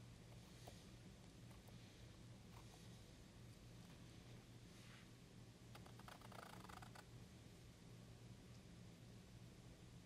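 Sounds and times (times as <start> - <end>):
low steady hum: 0.0 - 10.0
quick scratchy clicks: 5.8 - 7.1.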